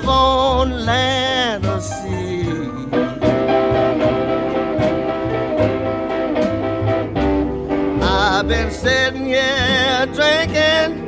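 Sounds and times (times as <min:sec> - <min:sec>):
blues guitar over a steady beat: 0:00.0 - 0:11.0.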